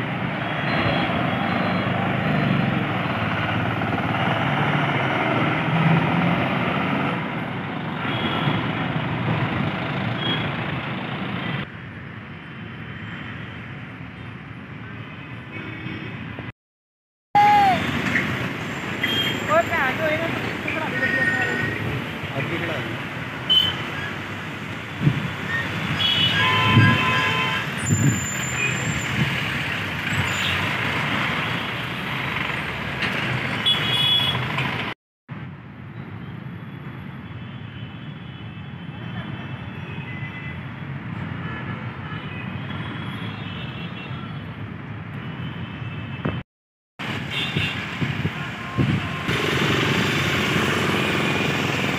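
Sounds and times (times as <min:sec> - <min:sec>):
steady traffic hum: 0:00.0 - 0:16.5, 0:17.4 - 0:51.9
vehicles passing: 0:00.0 - 0:16.5, 0:17.4 - 0:37.1, 0:47.0 - 0:51.9
car horns: 0:25.9 - 0:29.0, 0:33.6 - 0:34.5.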